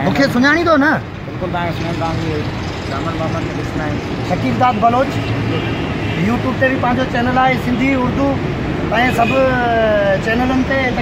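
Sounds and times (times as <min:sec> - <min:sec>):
men talking: 0:00.0 - 0:11.0
street traffic noise: 0:00.0 - 0:11.0.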